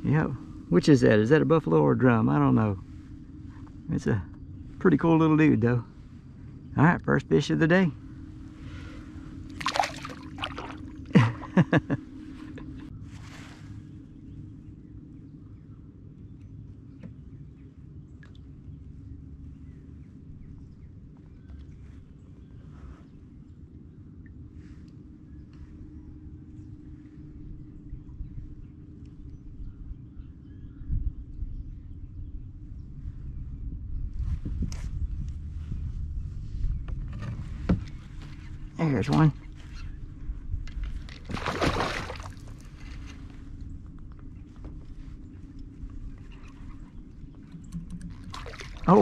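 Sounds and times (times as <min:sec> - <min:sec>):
wind rumble on microphone: 0:00.0 - 0:49.0
water sloshing: 0:09.5 - 0:11.5, 0:40.8 - 0:43.4, 0:46.1 - 0:49.0
gear ticking against hull: 0:47.2 - 0:48.9.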